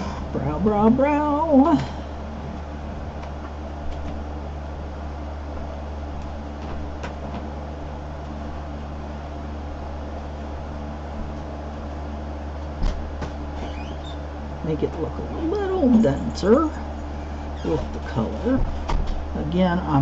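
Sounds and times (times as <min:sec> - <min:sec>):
low hum: 0:00.0 - 0:20.0.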